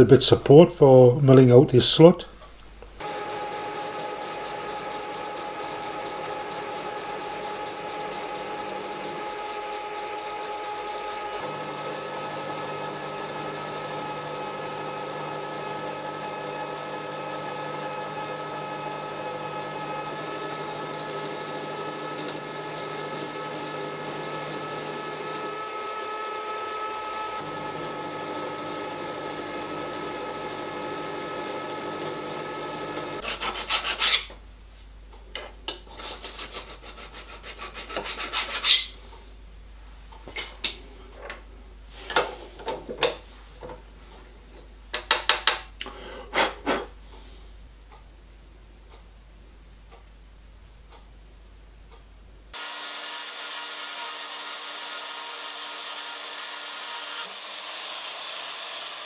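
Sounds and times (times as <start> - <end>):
milling machine cutting metal: 3.0 - 14.4, 52.6 - 59.0.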